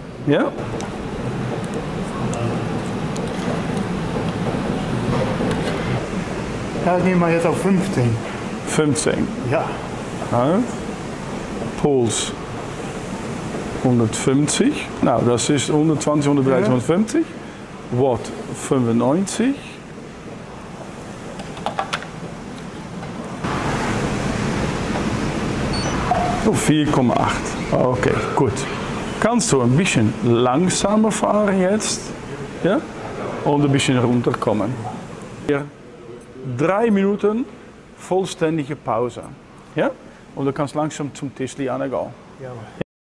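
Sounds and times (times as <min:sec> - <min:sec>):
steady rushing noise: 0:00.0 - 0:36.0
short high electronic beep: 0:25.7 - 0:26.0.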